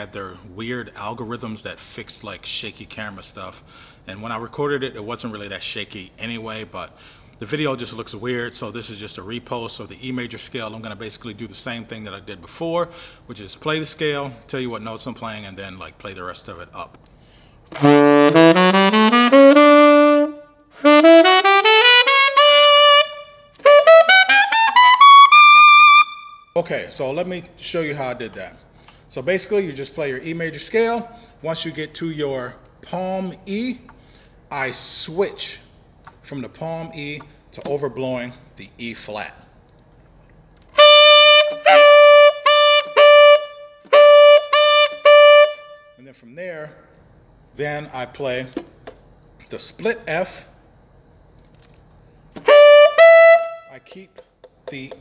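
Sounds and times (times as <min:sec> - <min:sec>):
tenor saxophone scale runs: 0:17.7 - 0:26.4, 0:40.8 - 0:45.8, 0:52.4 - 0:54.0.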